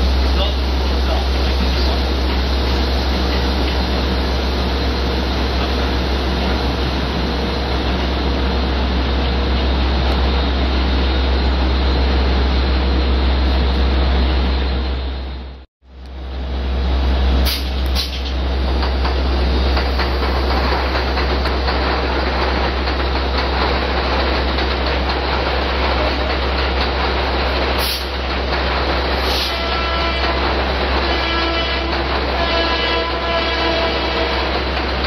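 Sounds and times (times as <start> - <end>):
subway train running: 0.0 - 35.0.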